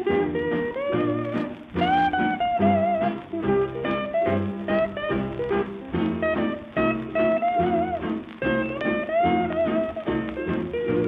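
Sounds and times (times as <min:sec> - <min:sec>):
old record of band music: 0:00.0 - 0:11.0.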